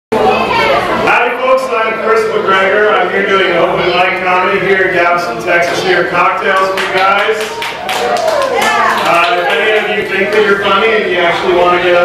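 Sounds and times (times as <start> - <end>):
man talking into a microphone: 1.1 - 7.5, 9.1 - 12.0.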